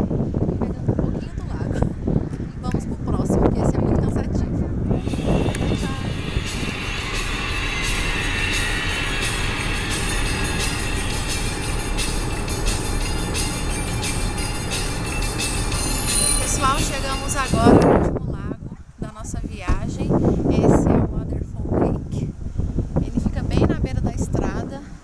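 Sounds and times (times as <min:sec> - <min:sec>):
car road and engine noise: 0:00.0 - 0:25.0.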